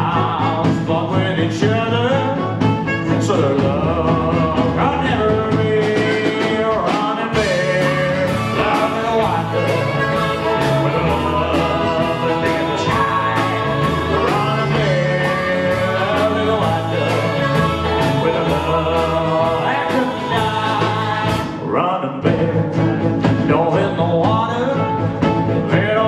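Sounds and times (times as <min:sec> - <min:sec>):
drum beat: 0:00.0 - 0:21.6
male lead vocal: 0:00.0 - 0:26.0
rock band playing: 0:00.0 - 0:26.0.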